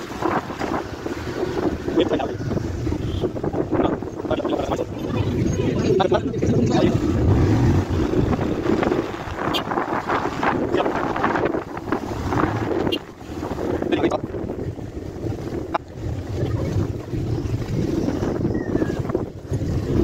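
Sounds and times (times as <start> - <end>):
vehicle engine rumble: 0.0 - 20.0
wind buffeting microphone: 0.0 - 20.0.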